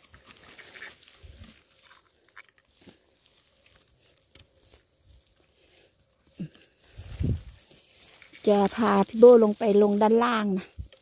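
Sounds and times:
rustling of dry moss and twigs: 0:00.0 - 0:11.0
twigs snapping: 0:00.0 - 0:11.0.

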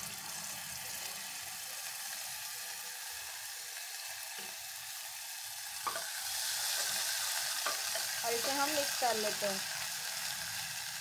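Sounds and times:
hot oil sizzling: 0:00.0 - 0:11.0.

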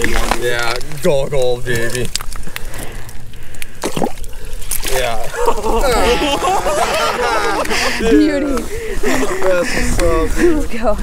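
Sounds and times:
water and slush sloshing: 0:00.0 - 0:11.0.

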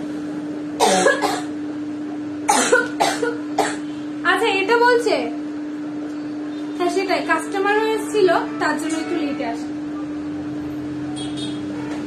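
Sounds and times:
woman coughing: 0:00.8 - 0:01.6, 0:02.5 - 0:03.9.

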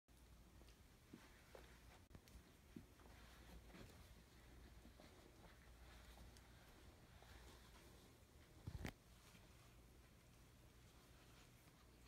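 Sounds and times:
low room hum: 0:00.1 - 0:12.0
cats scuffling on a mat: 0:00.5 - 0:12.0.

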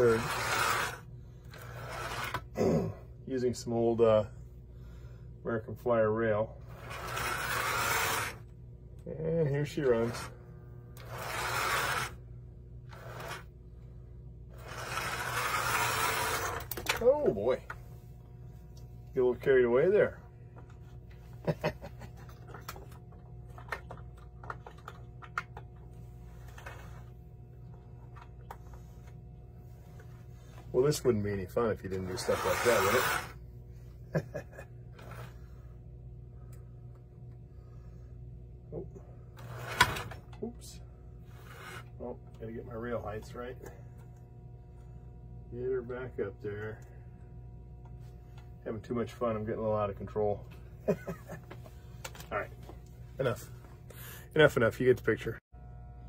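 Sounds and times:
toy train motor running: 0:00.0 - 0:02.4, 0:06.7 - 0:08.4, 0:09.9 - 0:10.3, 0:11.0 - 0:12.2, 0:12.9 - 0:13.5, 0:14.5 - 0:16.8, 0:32.0 - 0:33.4, 0:34.9 - 0:35.6, 0:39.4 - 0:40.0, 0:41.3 - 0:41.9
low electrical hum: 0:00.0 - 0:56.0.

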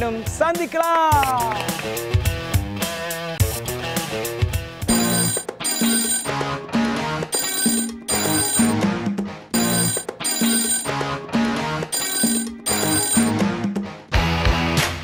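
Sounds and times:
telephone bell ringing: 0:04.9 - 0:06.5, 0:07.4 - 0:08.8, 0:09.6 - 0:11.1, 0:11.9 - 0:13.4
game show jingle with a beat: 0:07.4 - 0:08.8, 0:12.0 - 0:13.4.

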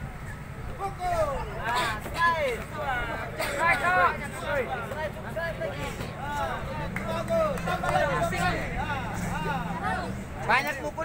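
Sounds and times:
crowd chatter: 0:00.0 - 0:11.0
people shouting encouragement: 0:00.7 - 0:11.0.

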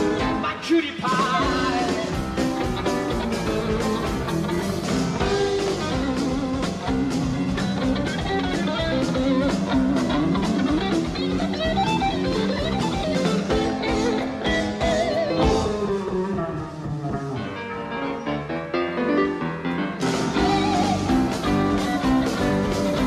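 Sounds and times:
electric guitar: 0:00.0 - 0:23.0
piano: 0:00.0 - 0:23.0
rock band playing live: 0:00.0 - 0:23.0.

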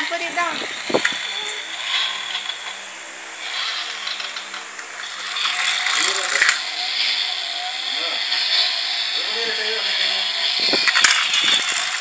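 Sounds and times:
toy car motor whirring: 0:00.0 - 0:12.0.

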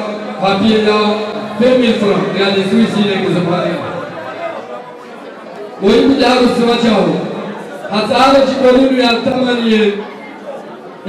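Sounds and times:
man speaking over loudspeakers: 0:00.0 - 0:04.7, 0:05.8 - 0:10.2
faint background chatter: 0:00.0 - 0:11.0.

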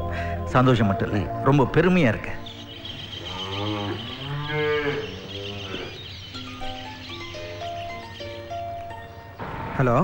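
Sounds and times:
cattle mooing: 0:03.2 - 0:06.0.

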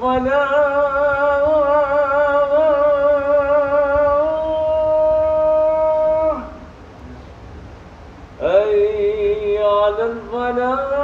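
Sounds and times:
man singing call to prayer: 0:00.0 - 0:06.7, 0:08.4 - 0:11.0.

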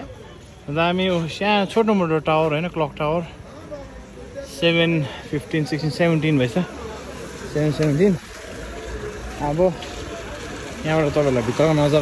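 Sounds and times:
traffic on wet street: 0:00.0 - 0:12.0
vehicle engine rumble: 0:06.3 - 0:12.0.

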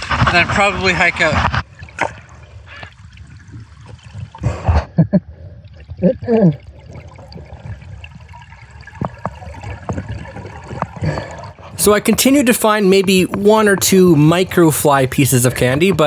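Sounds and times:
underwater water rush: 0:00.0 - 0:16.0
gurgling bubbles: 0:01.6 - 0:16.0.

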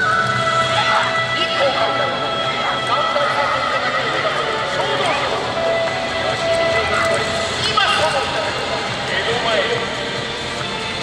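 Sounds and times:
dance music over loudspeakers: 0:00.0 - 0:11.0.

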